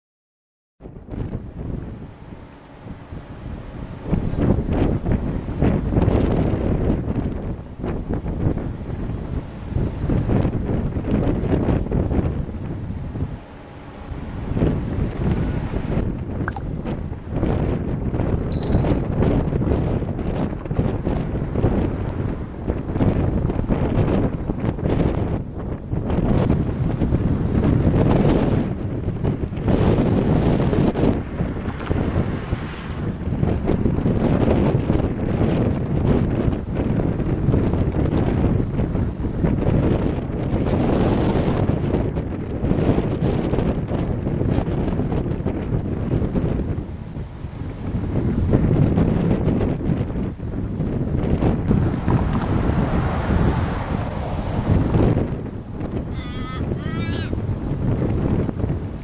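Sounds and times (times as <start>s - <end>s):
wind buffeting microphone: 0.8s - 59.0s.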